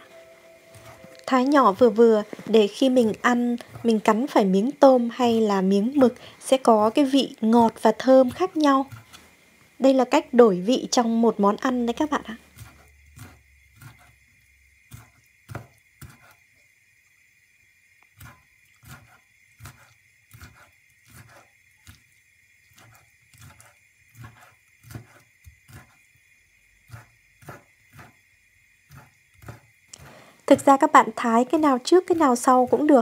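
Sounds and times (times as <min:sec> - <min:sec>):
knife chopping on wooden board: 0:03.0 - 0:04.4, 0:12.5 - 0:14.2, 0:14.9 - 0:16.3, 0:22.8 - 0:26.0, 0:26.9 - 0:28.2, 0:28.9 - 0:30.1.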